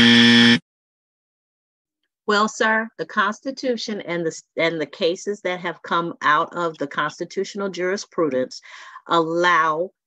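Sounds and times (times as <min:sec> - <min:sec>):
loud buzzer tone: 0:00.0 - 0:00.6.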